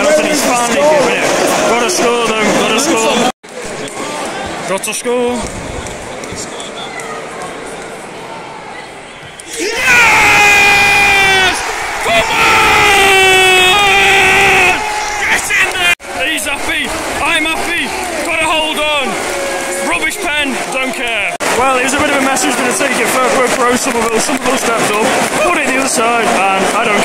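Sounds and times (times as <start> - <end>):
crowd shouting and cheering: 0.0 - 27.0
close held yells: 9.5 - 15.9.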